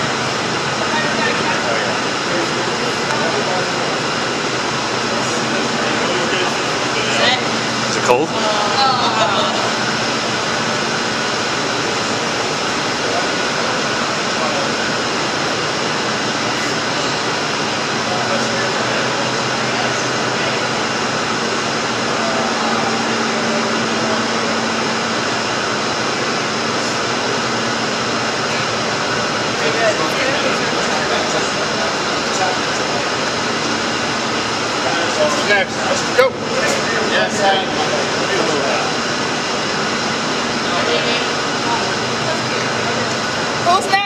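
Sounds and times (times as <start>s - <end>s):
machinery hum: 0.0s - 44.0s.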